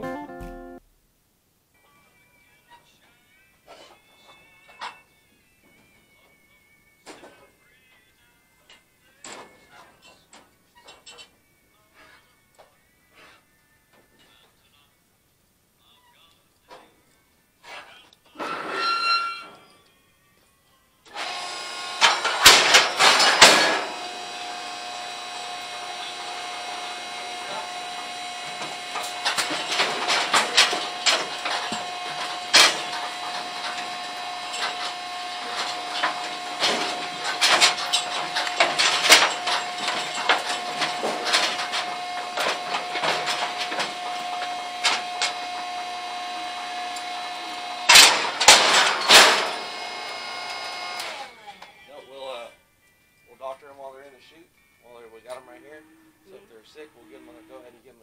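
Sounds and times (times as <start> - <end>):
knocks clicks and rattles: 28.6 - 45.4.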